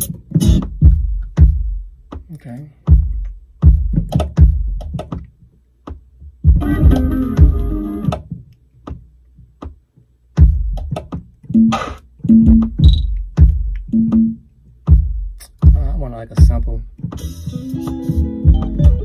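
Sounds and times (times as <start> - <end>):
deep electronic kick drum: 0.0 - 5.2, 5.9 - 9.0, 9.6 - 17.2, 17.8 - 19.0
drum machine beat: 0.0 - 19.0.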